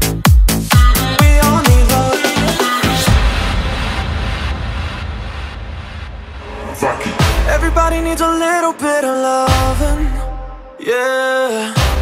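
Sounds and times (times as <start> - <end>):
noisy electronic wash: 2.9 - 10.2
deep bass rumble: 3.0 - 8.7.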